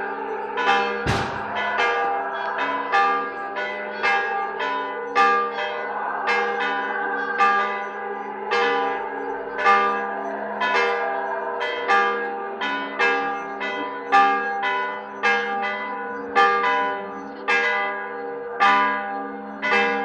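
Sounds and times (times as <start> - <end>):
church bells pealing: 0.0 - 20.0.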